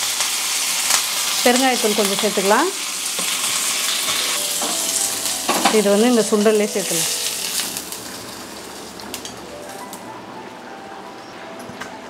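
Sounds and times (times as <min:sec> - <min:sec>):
hot oil sizzling: 0:00.0 - 0:10.1.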